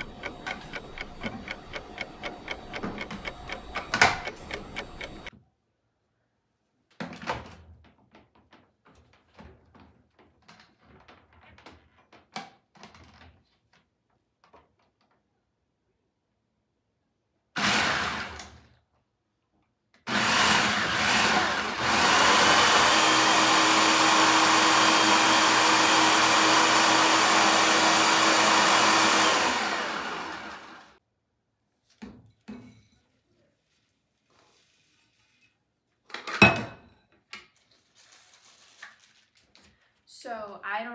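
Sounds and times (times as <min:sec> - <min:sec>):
clock-like ticking: 0:00.0 - 0:05.3
food processor grinding: 0:00.0 - 0:05.3, 0:17.6 - 0:18.5, 0:20.1 - 0:31.0.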